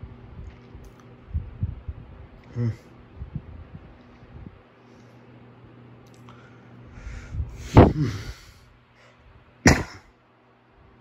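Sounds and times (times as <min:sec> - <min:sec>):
person coughing: 0:09.6 - 0:10.1.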